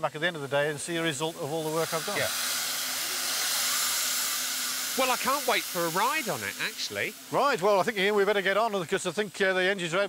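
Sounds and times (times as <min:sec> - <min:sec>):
steam locomotive hissing: 0:00.0 - 0:10.0.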